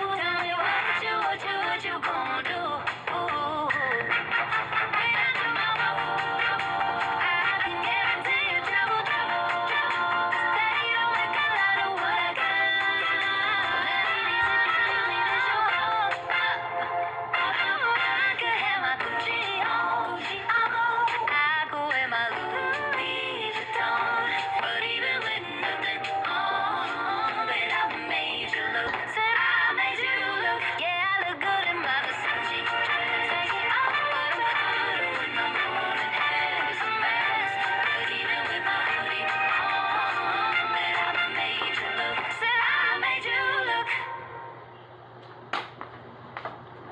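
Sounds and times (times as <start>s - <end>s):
pop song with sung vocals: 0.0s - 44.4s.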